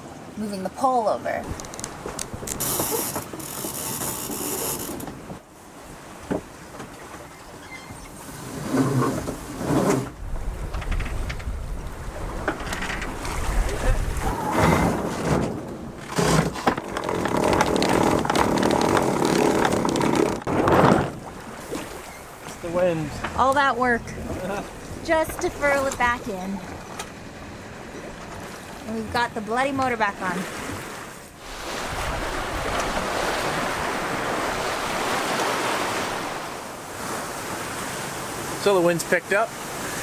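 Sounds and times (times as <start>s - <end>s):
sea noise: 0.0s - 40.0s
wind: 0.0s - 40.0s
wind buffeting microphone: 1.4s - 3.0s, 10.1s - 16.0s, 16.8s - 37.8s
knocks and rustles of deck gear: 15.0s - 21.8s.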